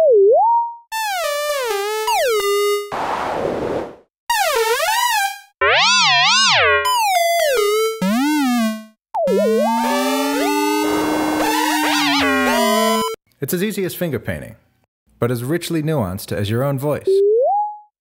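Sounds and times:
synthesized pitch-bending tones: 0:04.3 - 0:13.2.

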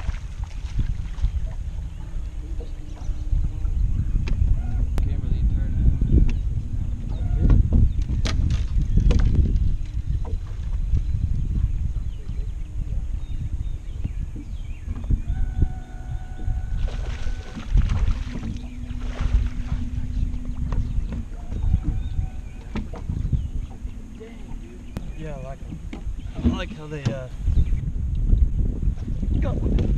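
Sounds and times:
steady low hum: 0:00.0 - 0:29.9
wind buffeting microphone: 0:00.0 - 0:29.9.

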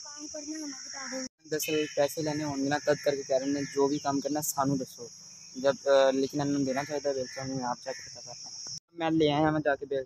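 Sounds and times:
insects singing: 0:00.0 - 0:10.0
young man talking: 0:01.4 - 0:10.0.

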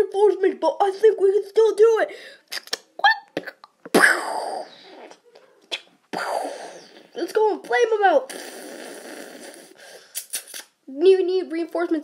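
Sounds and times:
mouth-made sharp bursts: 0:07.6 - 0:10.9.

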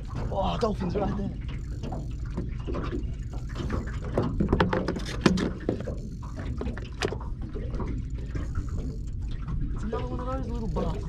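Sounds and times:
water around a boat: 0:00.0 - 0:11.0
wind: 0:00.0 - 0:11.0
sharp clicks and knocks: 0:01.5 - 0:09.6.

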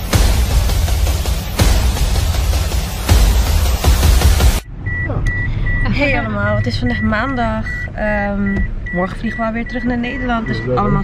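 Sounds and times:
music with a heavy beat: 0:00.0 - 0:04.6
car warning chime beeping: 0:04.6 - 0:11.0
low car interior hum: 0:04.6 - 0:11.0.

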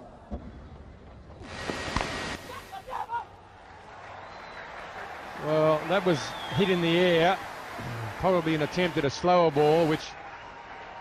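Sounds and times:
crowd noise: 0:02.4 - 0:11.0.

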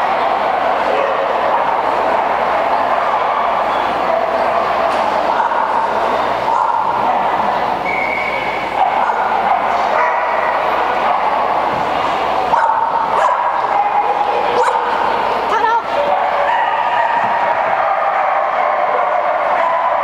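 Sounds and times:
dogs barking and yipping: 0:00.4 - 0:11.8, 0:12.4 - 0:15.2, 0:15.9 - 0:20.0.

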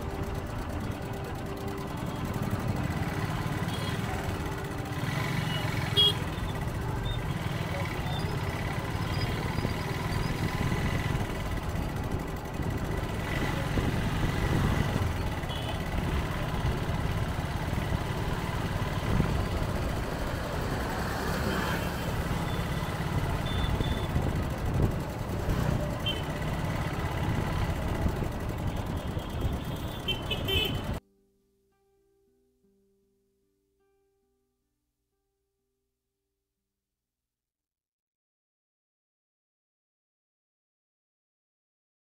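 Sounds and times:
traffic rumble and road noise: 0:00.0 - 0:31.0
car horn toots: 0:03.6 - 0:04.4, 0:05.4 - 0:06.7, 0:15.4 - 0:16.0, 0:22.5 - 0:24.2, 0:26.0 - 0:26.6, 0:28.6 - 0:31.0.

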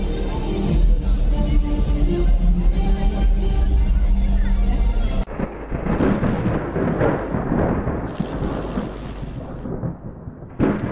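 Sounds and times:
deep noisy rumble: 0:02.5 - 0:10.9.

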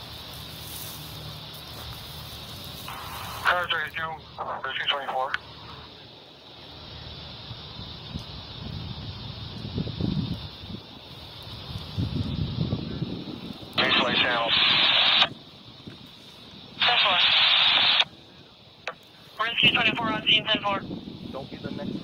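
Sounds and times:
radio static hiss: 0:00.0 - 0:09.1, 0:11.0 - 0:22.0
garbled two-way radio voice: 0:03.0 - 0:05.4, 0:13.8 - 0:15.3, 0:16.8 - 0:18.0, 0:19.4 - 0:20.9.

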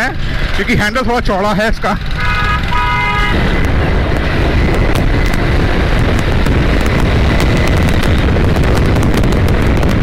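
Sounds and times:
motorcycle engine running: 0:00.0 - 0:10.0
wind rush on microphone: 0:02.0 - 0:10.0
horn blast: 0:02.1 - 0:03.4.

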